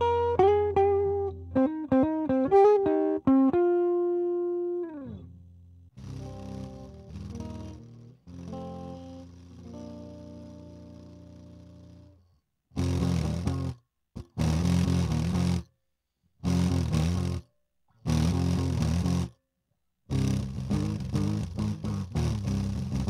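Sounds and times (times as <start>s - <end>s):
fast choppy guitar strumming: 6.0s - 12.0s, 12.8s - 13.7s
distorted electric guitar chords: 6.0s - 12.1s, 12.8s - 13.7s.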